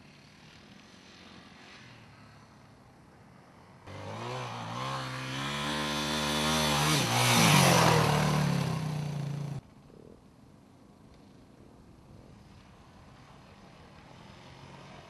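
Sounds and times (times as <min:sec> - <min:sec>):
motorcycle engine revving: 0:03.9 - 0:09.6.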